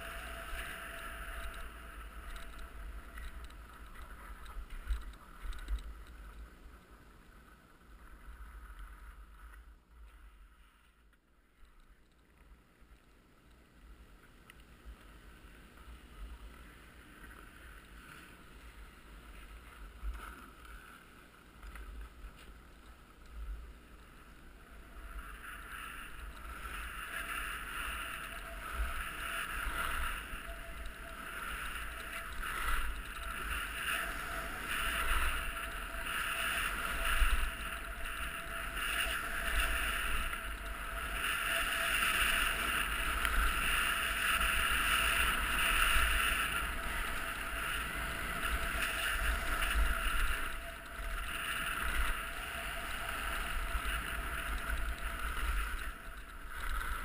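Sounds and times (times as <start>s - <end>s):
skis scraping on hard snow: 21.8s - 57.0s.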